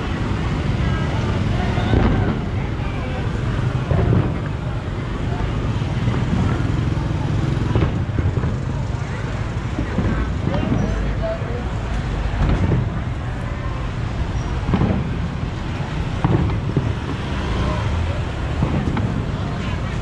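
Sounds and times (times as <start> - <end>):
motorbikes and cars passing: 0.0 - 20.0
people's voices: 0.0 - 20.0.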